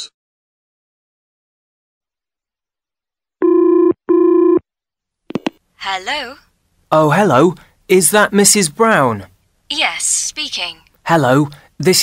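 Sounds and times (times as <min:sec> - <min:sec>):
telephone ringing: 0:03.4 - 0:04.6.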